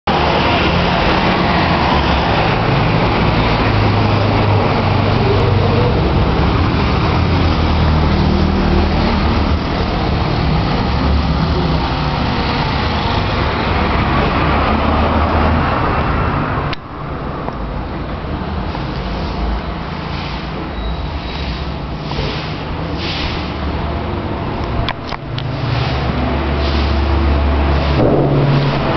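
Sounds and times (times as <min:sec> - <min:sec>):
street traffic noise: 0:00.0 - 0:28.9
truck engine rumbling: 0:00.1 - 0:28.9.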